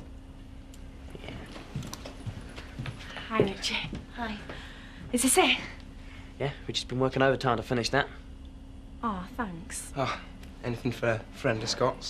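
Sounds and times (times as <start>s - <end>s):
faint steady hum: 0.0s - 12.0s
footsteps on hard floor: 1.5s - 4.6s.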